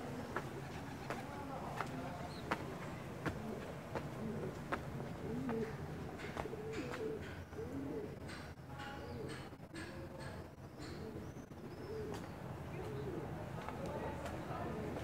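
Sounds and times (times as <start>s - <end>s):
birds cooing: 0.0s - 13.5s
faint footsteps: 0.1s - 7.4s, 12.1s - 15.0s.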